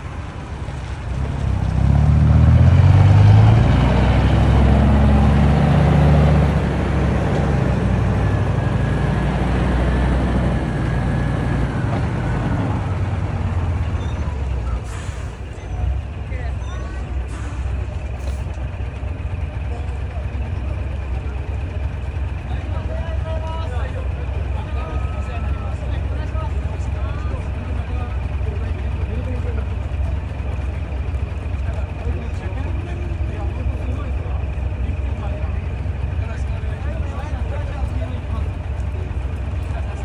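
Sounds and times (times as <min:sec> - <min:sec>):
diesel truck engine idling: 0:00.0 - 0:40.0
people talking: 0:04.5 - 0:40.0.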